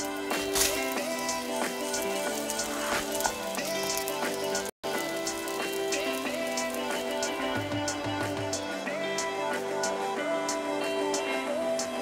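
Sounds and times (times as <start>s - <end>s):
omelette sizzling in a pan: 0.0s - 8.3s
soft background music: 0.0s - 12.0s.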